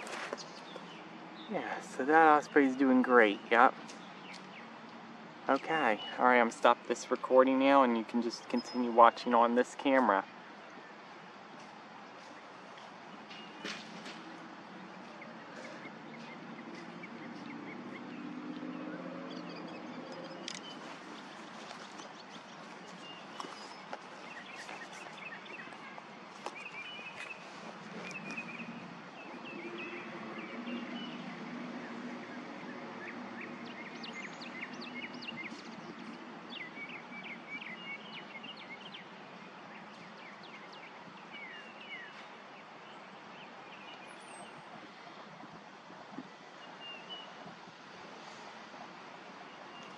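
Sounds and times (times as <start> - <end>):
birds chirping: 0.0 - 49.9.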